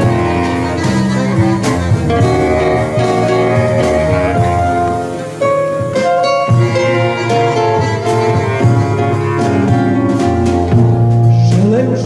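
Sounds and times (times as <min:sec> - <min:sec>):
clarinets playing: 0:00.0 - 0:10.7
double bass: 0:00.0 - 0:12.0
plucked-string lead melody: 0:00.0 - 0:12.0.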